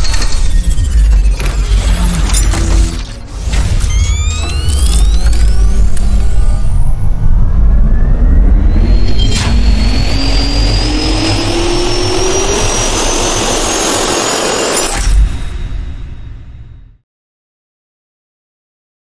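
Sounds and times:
jet turbine spooling up: 0:00.0 - 0:15.0.

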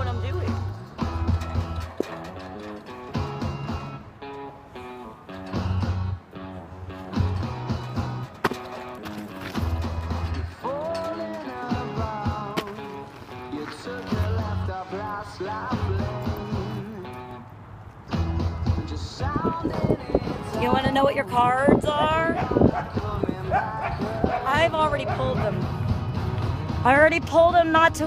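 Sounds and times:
person singing: 0:10.6 - 0:17.4, 0:18.7 - 0:25.7.

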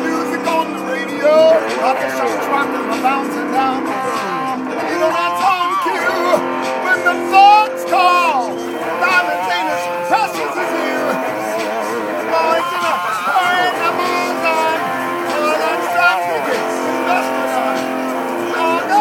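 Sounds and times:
electric guitar: 0:00.0 - 0:19.0
man singing: 0:00.0 - 0:19.0.

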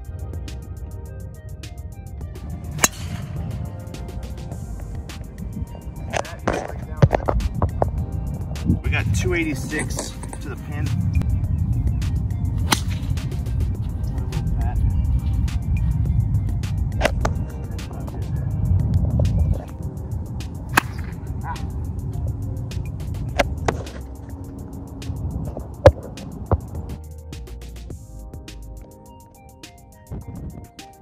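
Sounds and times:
background music: 0:00.0 - 0:31.0
golf club striking ball: 0:02.6 - 0:08.0, 0:12.6 - 0:13.6, 0:20.6 - 0:21.7
wind rumble on microphone: 0:04.4 - 0:27.0.

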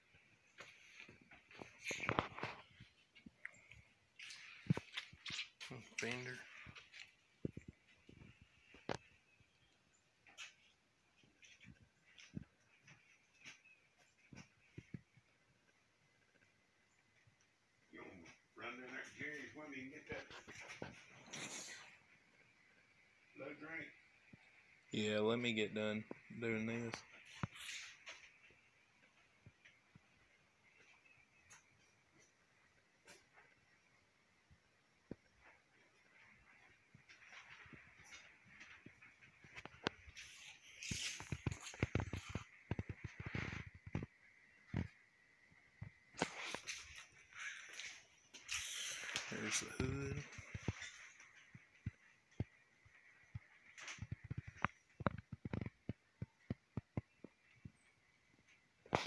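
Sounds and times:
person speaking: 0:05.6 - 0:06.7, 0:25.0 - 0:27.8, 0:48.5 - 0:50.8
rustling: 0:34.7 - 0:45.0.

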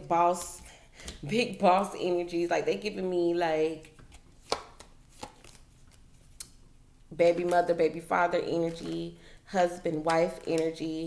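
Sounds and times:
cards being shuffled: 0:03.8 - 0:06.6, 0:08.5 - 0:09.1, 0:10.0 - 0:11.0.

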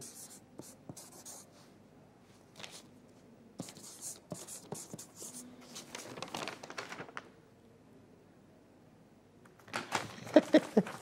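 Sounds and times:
pen writing on paper: 0:03.6 - 0:05.4.

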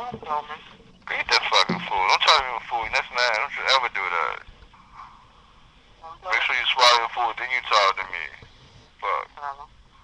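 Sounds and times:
person speaking: 0:00.0 - 0:05.1, 0:06.0 - 0:09.7
faint background hiss: 0:00.0 - 0:10.0.

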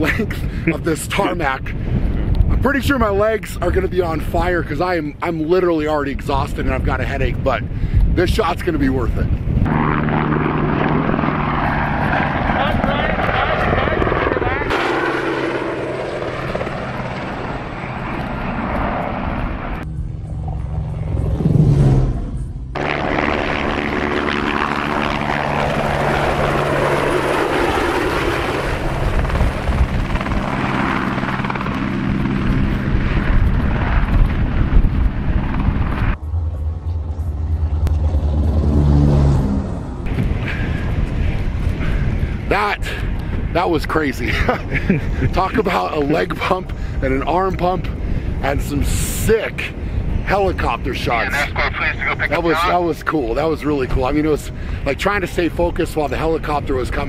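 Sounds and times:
helicopter flying past: 0:08.9 - 0:57.0.

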